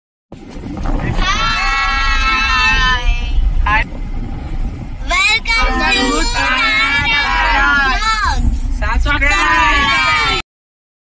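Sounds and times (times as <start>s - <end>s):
car engine and road rumble: 0.3s - 10.4s
children calling out: 5.1s - 8.5s.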